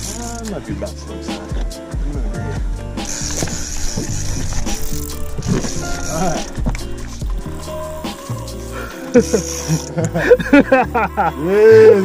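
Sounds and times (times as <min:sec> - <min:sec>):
music with steady bass line: 0:00.0 - 0:12.0.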